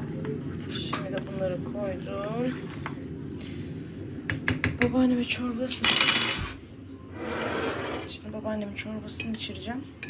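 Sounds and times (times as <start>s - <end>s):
dishes rubbing and scraping: 7.1s - 8.2s.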